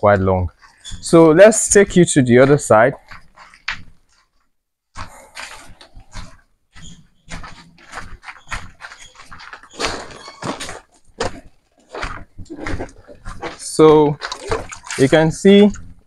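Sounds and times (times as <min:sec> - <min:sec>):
footsteps crunching on gravel: 0:05.0 - 0:15.3.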